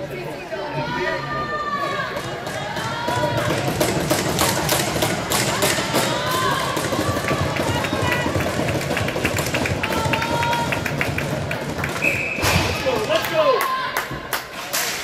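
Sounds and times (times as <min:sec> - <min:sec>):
people talking in echoing arena: 0:00.0 - 0:15.0.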